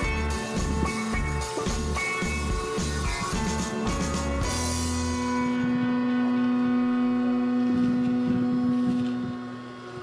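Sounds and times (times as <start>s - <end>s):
handheld vacuum motor hum: 0.0s - 10.0s.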